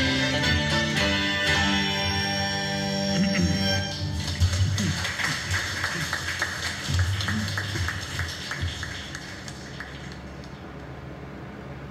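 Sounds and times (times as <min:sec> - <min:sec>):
audience applause: 0:03.9 - 0:10.6.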